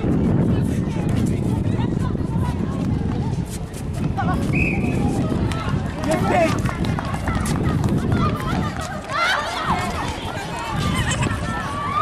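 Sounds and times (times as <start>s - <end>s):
shoes on hard court: 2.4s - 10.6s.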